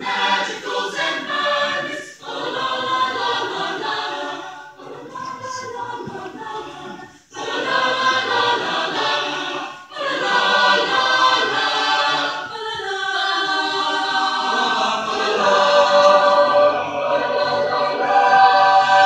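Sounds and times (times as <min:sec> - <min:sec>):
choir singing in parts: 0:00.0 - 0:19.0.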